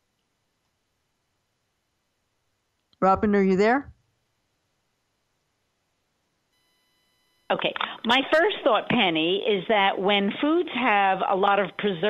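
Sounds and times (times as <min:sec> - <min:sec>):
faint steady tone: 0:06.0 - 0:09.5.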